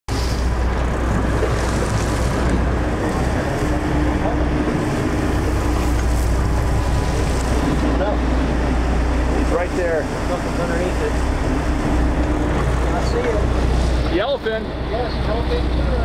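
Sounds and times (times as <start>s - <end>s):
boat engine rumble: 0.1s - 16.0s
water rushing along hull: 0.1s - 16.0s
wind buffeting microphone: 0.1s - 16.0s.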